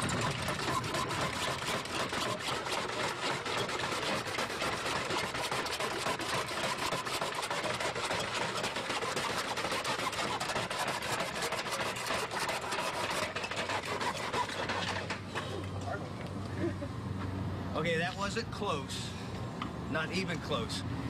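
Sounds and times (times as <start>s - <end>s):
handsaws rasping through wood: 0.0s - 15.2s.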